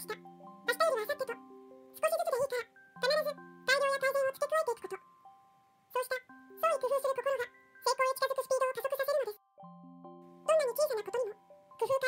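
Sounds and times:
person narrating: 0.0 - 5.1, 5.9 - 9.4, 10.5 - 12.0
soft music-box music: 0.0 - 12.0.

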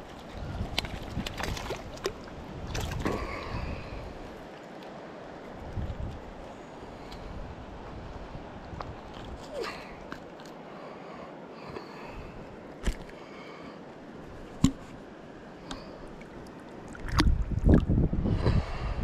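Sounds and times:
river flowing: 1.6 - 17.2.

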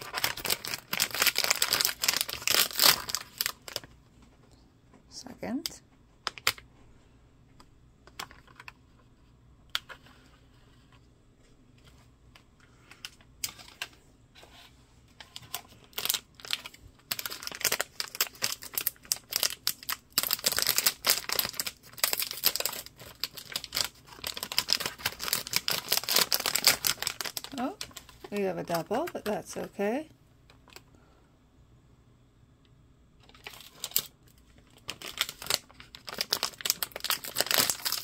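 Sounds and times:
plastic bag crinkling: 0.0 - 4.0, 15.2 - 29.8, 33.2 - 38.0.

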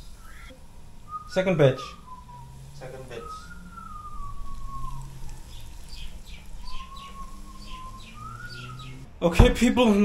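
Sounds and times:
small birds chirping: 0.0 - 9.1
person whistling: 1.1 - 2.5, 3.1 - 5.2.

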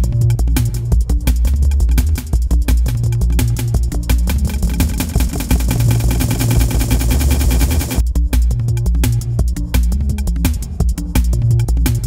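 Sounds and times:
looped bassline: 0.0 - 9.2
electronic drum and bass groove: 0.0 - 12.0
buzzing stutter of repeated hits: 4.2 - 8.0.

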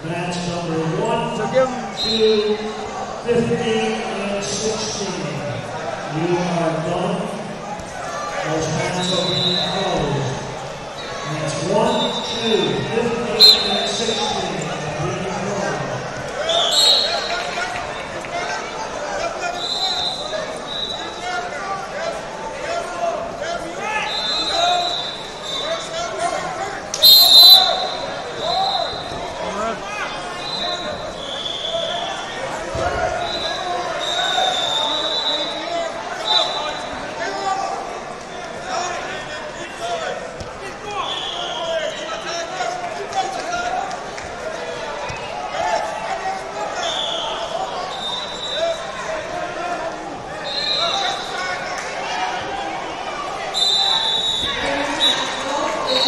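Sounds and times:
many voices chattering in a hall: 0.0 - 56.0
referee whistle blasts: 2.0 - 2.4, 9.0 - 9.9, 13.4 - 14.4, 16.5 - 17.3, 24.1 - 25.7, 27.0 - 29.1, 30.4 - 32.2, 33.2 - 35.6, 41.0 - 42.0, 46.8 - 48.6, 50.4 - 51.2, 53.5 - 56.0.

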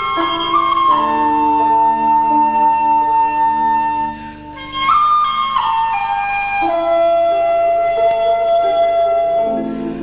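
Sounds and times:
bamboo flute melody: 0.0 - 10.0
quiet lower accompaniment: 0.0 - 10.0.

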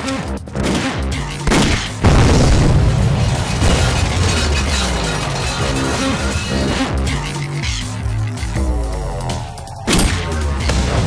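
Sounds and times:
background score music: 0.0 - 11.0
explosion boom and low rumble: 1.5 - 4.9.

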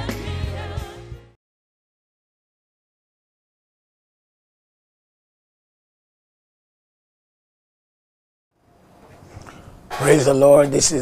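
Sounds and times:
microphone hiss and hum: 8.6 - 11.0
man speaking: 10.0 - 11.0.

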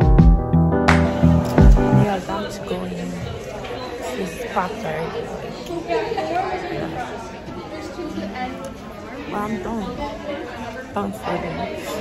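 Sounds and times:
indistinct chatter: 1.1 - 12.0.

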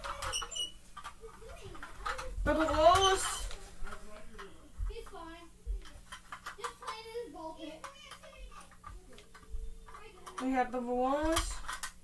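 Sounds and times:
toy cars clicking and tapping: 0.0 - 12.0.

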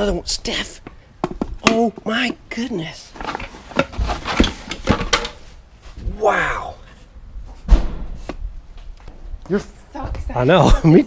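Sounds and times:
boxes knocking and clunking: 3.2 - 5.5.

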